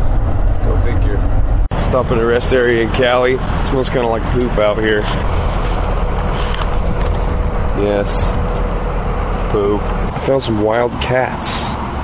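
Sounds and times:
traffic rumble: 0:00.0 - 0:12.0.

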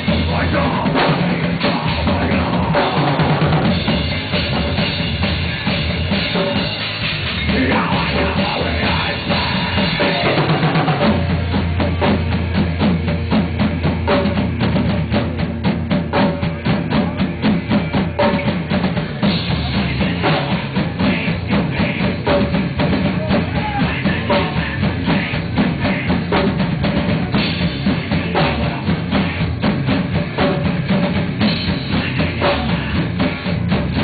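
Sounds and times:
electric guitars and bass: 0:00.0 - 0:34.0
fast drum kit beat: 0:00.0 - 0:34.0.

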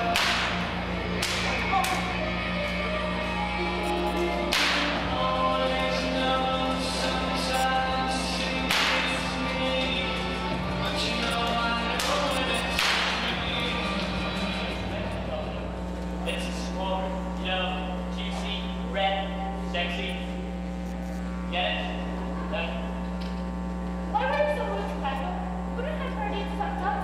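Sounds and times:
background music: 0:00.0 - 0:18.2
steady low hum: 0:00.0 - 0:27.0.

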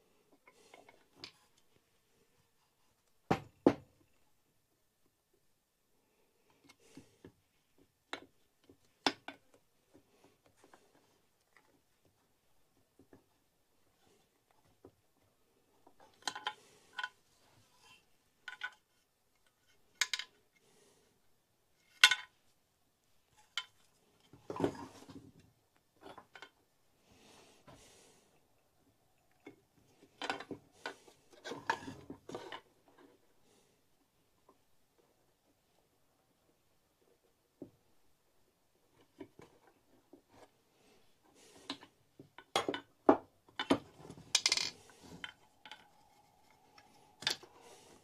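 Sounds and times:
scraping and handling noise: 0:23.2 - 0:26.6, 0:29.2 - 0:33.4, 0:38.9 - 0:48.0.

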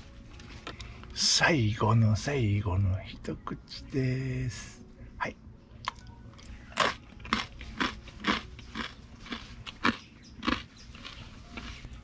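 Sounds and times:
person chewing crunchy food: 0:05.8 - 0:12.0.

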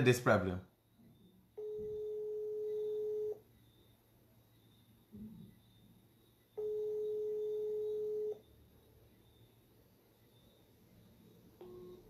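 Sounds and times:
telephone ringback tone: 0:01.6 - 0:03.4, 0:06.6 - 0:08.4, 0:11.6 - 0:12.0.

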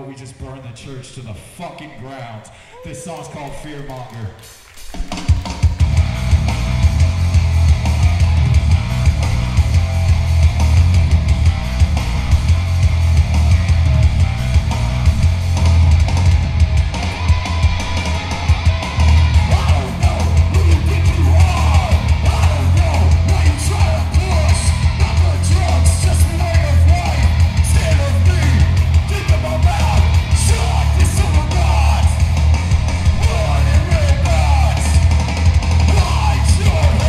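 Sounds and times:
yelled vocals: 0:02.2 - 0:37.0
punk band playing live: 0:04.7 - 0:37.0.

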